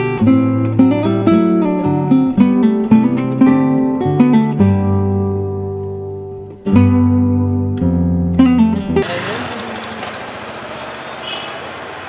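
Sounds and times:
steady motor-like hum: 0:09.0 - 0:12.0.

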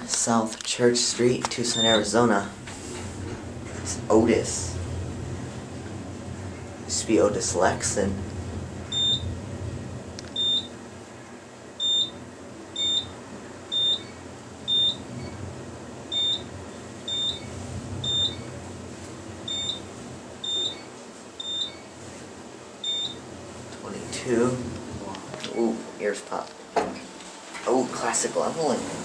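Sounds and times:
elevator car low hum: 0:00.0 - 0:29.0
elevator short high beeps: 0:01.7 - 0:02.1, 0:08.9 - 0:09.3, 0:10.4 - 0:10.8, 0:11.8 - 0:15.4, 0:16.1 - 0:16.5, 0:17.1 - 0:18.5, 0:19.4 - 0:21.9, 0:22.8 - 0:23.2.

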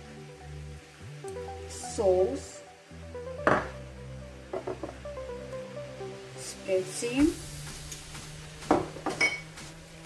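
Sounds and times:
glass bowls clinking: 0:09.0 - 0:09.6.

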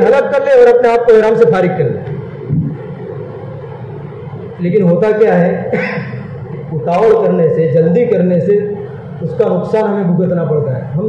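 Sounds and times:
low background rumble and hiss: 0:00.0 - 0:11.0.

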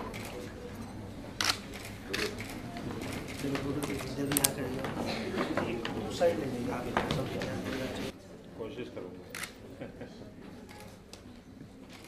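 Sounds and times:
faint murmuring voices: 0:00.0 - 0:12.0
camera shutters clicking: 0:01.4 - 0:04.6, 0:09.3 - 0:09.6.

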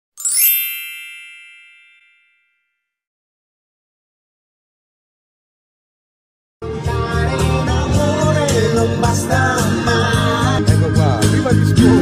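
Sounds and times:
bright bell-like chime: 0:00.2 - 0:02.9.

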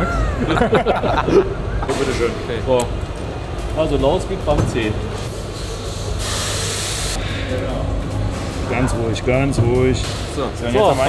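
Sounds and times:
hiss of escaping air: 0:05.5 - 0:07.2.

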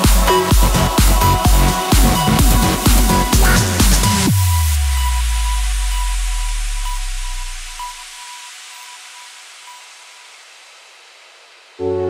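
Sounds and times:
white-noise wash in dance track: 0:00.0 - 0:11.9.

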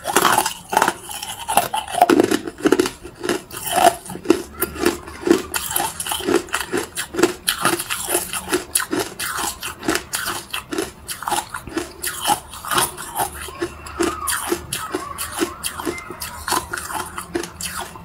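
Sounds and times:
ice being chewed: 0:00.0 - 0:18.0.

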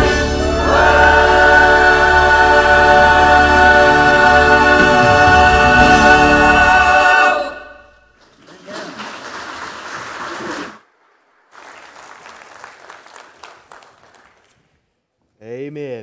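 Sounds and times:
choir holding a chord: 0:00.0 - 0:08.1
congregation applauding: 0:08.2 - 0:14.7.

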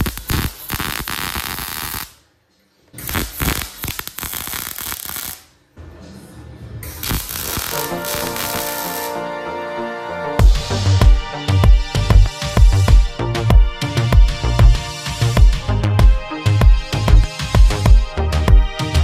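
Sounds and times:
welding arc crackling: 0:00.0 - 0:02.2, 0:03.0 - 0:05.6, 0:06.8 - 0:09.3
electronic background music: 0:07.0 - 0:19.0.

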